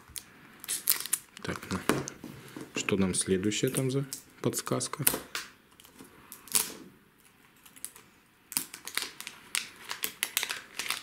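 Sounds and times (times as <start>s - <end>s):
wrapping crackling as peeled: 0.0s - 1.8s, 5.8s - 11.0s.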